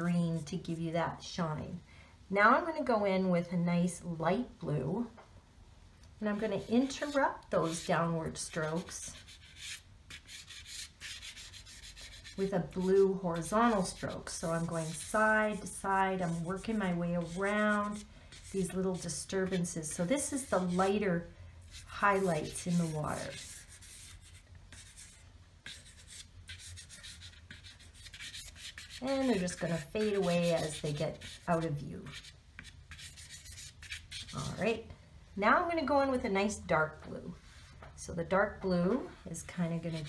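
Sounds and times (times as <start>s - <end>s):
chalk pastel scratching paper: 6.6s - 7.9s, 8.5s - 21.0s, 21.7s - 34.6s, 39.7s - 40.0s.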